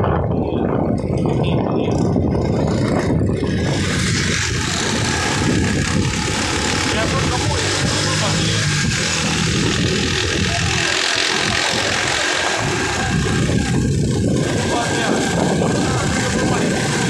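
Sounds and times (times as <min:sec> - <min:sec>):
motorcycle engine running: 0:00.0 - 0:17.0
wind buffeting microphone: 0:00.0 - 0:17.0.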